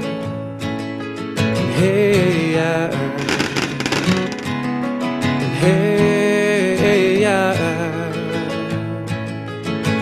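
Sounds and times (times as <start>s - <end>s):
song with guitar and beat: 0.0s - 10.0s
person singing: 1.7s - 4.5s, 5.4s - 8.8s.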